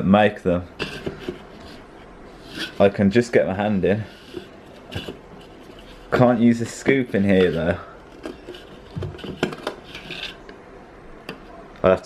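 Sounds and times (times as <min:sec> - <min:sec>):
scoop scraping plastic tub: 0:00.8 - 0:03.1, 0:03.9 - 0:10.5.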